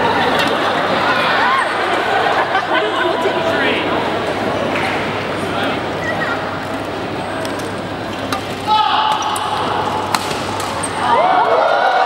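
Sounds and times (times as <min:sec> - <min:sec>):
crowd chatter: 0:00.0 - 0:12.0
racket hitting shuttlecock: 0:08.3 - 0:11.0.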